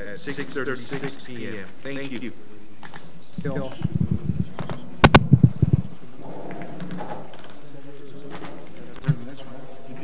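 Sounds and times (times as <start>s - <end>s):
faint murmured talk: 0.0s - 10.0s.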